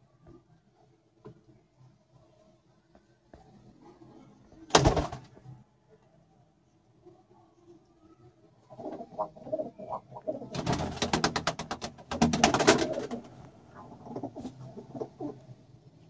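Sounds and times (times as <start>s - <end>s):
rapid wing flapping: 4.7s - 5.4s, 10.5s - 13.3s
pigeons cooing: 8.6s - 10.8s, 12.2s - 15.6s.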